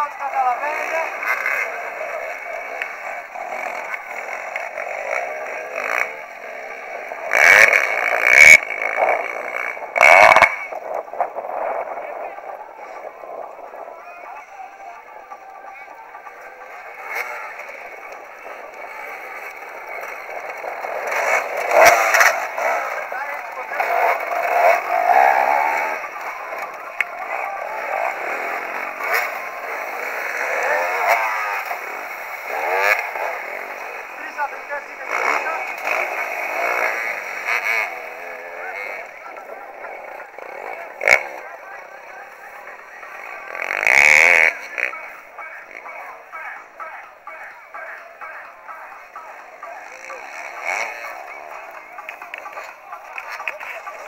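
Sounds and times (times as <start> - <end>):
dirt bike engines revving: 0.0 - 54.0.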